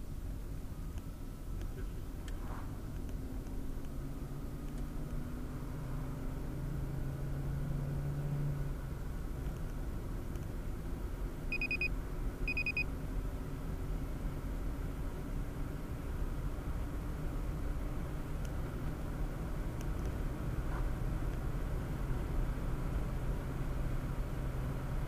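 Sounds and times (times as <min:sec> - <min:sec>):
car road and engine noise: 0:00.0 - 0:25.0
short electronic beeps: 0:11.5 - 0:12.9.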